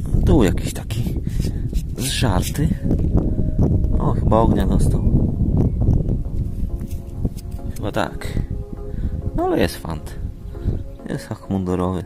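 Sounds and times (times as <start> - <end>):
wind buffeting microphone: 0.0 - 11.6.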